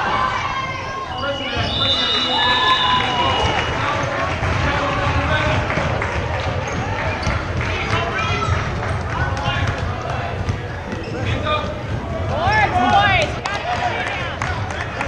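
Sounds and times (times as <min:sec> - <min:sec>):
sneakers squeaking: 0:06.4 - 0:13.4.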